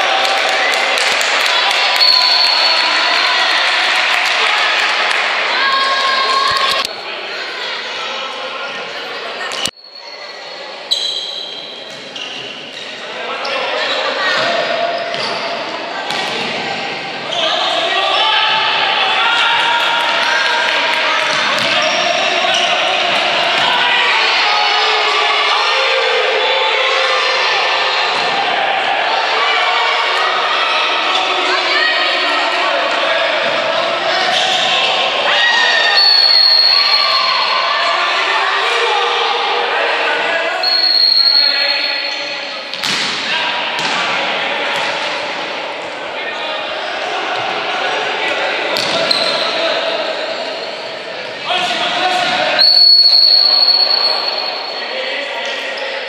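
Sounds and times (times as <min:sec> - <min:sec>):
referee's whistle blasts: 0:35.9 - 0:37.6, 0:40.6 - 0:42.4, 0:52.6 - 0:54.9.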